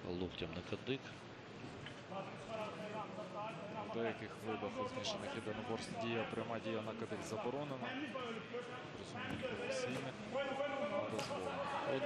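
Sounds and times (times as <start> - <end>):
man giving sports commentary: 2.1 - 12.0.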